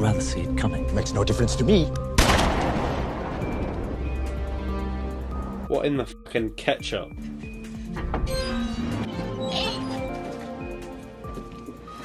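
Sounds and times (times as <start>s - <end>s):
soft film score music: 0.0s - 12.0s.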